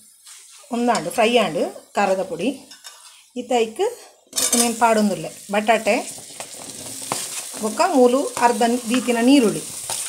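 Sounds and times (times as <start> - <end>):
potatoes sizzling in hot oil: 0.0 - 3.8, 4.4 - 10.0.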